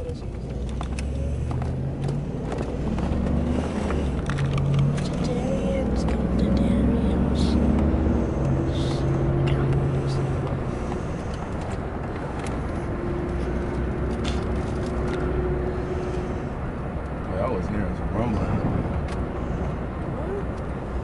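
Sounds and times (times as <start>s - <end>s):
car cabin rumble: 0.0s - 21.0s.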